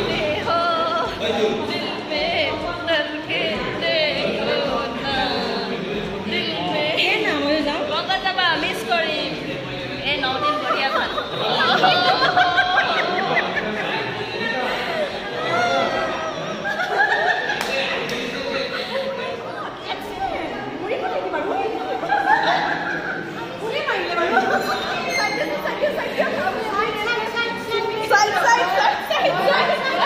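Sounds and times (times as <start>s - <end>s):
people talking at once: 0.0s - 30.0s
women chattering: 0.0s - 30.0s.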